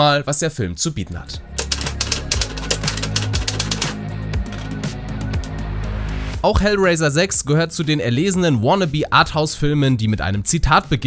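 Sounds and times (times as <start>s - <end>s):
typewriter keys clicking: 1.6s - 4.8s.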